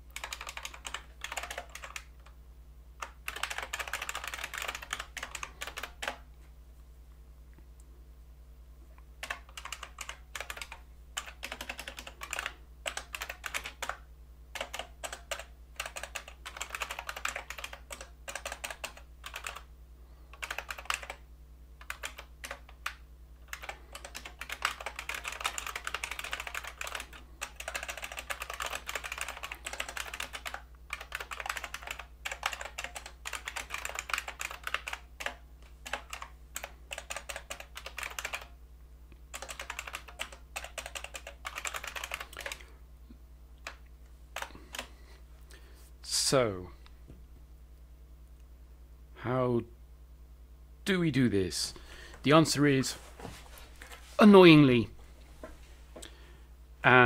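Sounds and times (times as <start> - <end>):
faint low hum: 0.0 - 57.0
typing on computer keyboard: 0.1 - 2.4, 3.0 - 6.2, 9.2 - 19.7, 20.3 - 21.2, 21.8 - 38.5, 39.3 - 42.7, 44.4 - 44.9.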